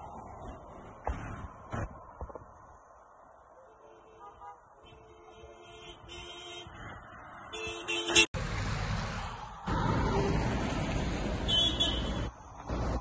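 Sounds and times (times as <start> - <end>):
traffic: 0.0 - 13.0.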